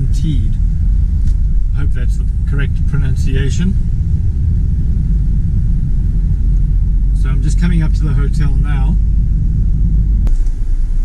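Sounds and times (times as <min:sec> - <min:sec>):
car driving on wet road: 0:00.0 - 0:11.0.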